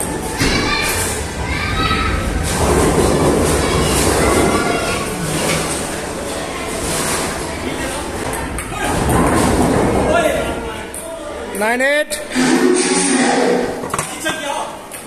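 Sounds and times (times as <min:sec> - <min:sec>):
indistinct chatter of voices: 0:00.0 - 0:11.6.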